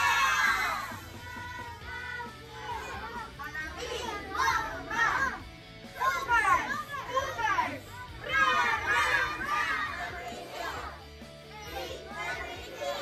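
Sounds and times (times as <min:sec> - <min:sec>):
children shouting and cheering: 0:00.0 - 0:13.0
music: 0:00.0 - 0:13.0.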